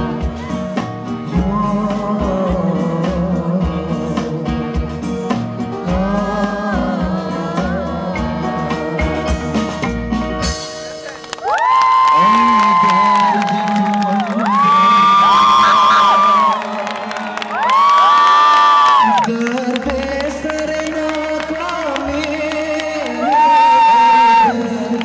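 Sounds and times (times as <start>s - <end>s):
person singing: 0.0s - 5.1s, 5.7s - 9.9s, 12.1s - 25.0s
drums: 0.0s - 25.0s
keyboard: 0.0s - 25.0s
audience cheering: 11.0s - 25.0s.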